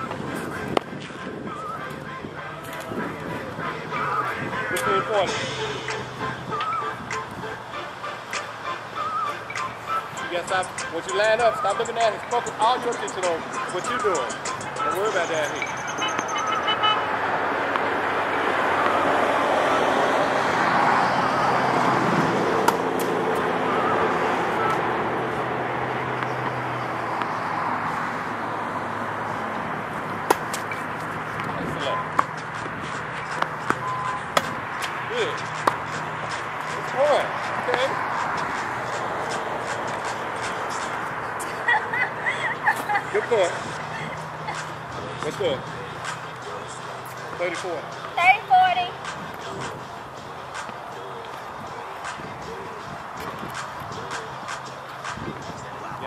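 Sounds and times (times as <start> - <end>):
rushing noise with low hum: 0.0 - 9.0, 17.1 - 56.0
tennis ball bouncing: 17.7 - 18.0, 22.5 - 23.6, 29.5 - 41.1
tennis ball struck by racket: 22.6 - 23.5, 30.2 - 32.7, 33.3 - 36.8.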